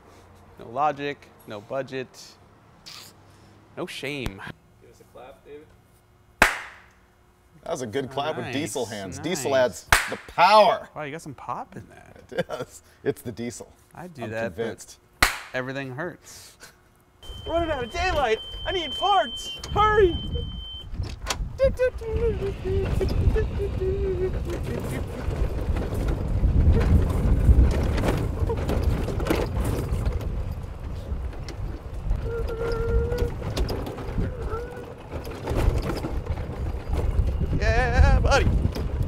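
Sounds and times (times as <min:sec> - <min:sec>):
golf cart rumbling: 0:19.5 - 0:39.0
knocks and rattles from bumps: 0:24.4 - 0:39.0
man's voice: 0:37.6 - 0:38.5.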